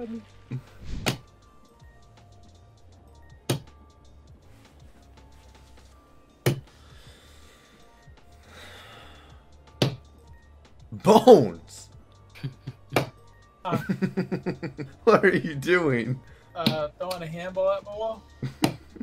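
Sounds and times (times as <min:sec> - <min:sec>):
slot game music: 0:00.0 - 0:19.0.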